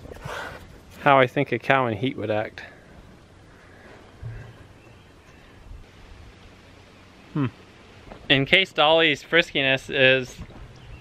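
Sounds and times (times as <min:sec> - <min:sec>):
man saying hmm: 0:07.3 - 0:07.6.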